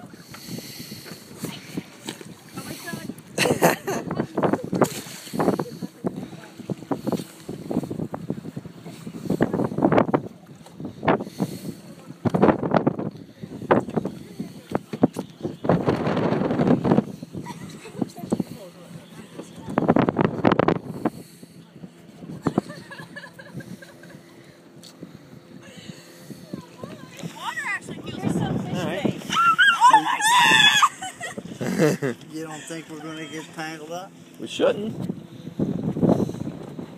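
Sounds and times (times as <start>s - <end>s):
wind buffeting microphone: 0.0s - 33.6s, 34.2s - 36.9s
person squealing high-pitched: 29.3s - 30.9s.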